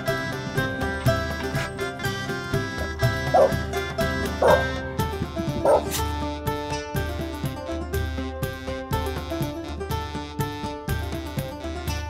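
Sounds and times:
background music: 0:00.0 - 0:12.0
dog barking: 0:03.2 - 0:03.7, 0:04.3 - 0:04.8, 0:05.6 - 0:06.0.

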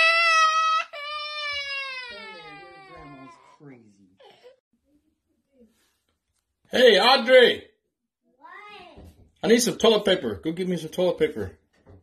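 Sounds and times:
toddler crying: 0:00.0 - 0:03.6.

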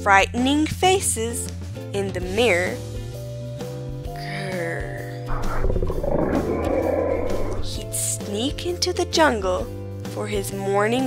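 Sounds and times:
soft background music: 0:00.0 - 0:11.0
rough growling roar: 0:05.3 - 0:08.1.

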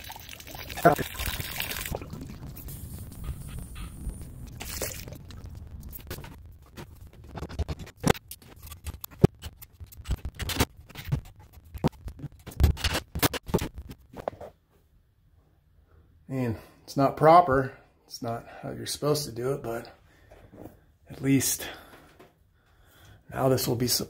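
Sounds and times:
steady low noise: 0:01.6 - 0:08.2.

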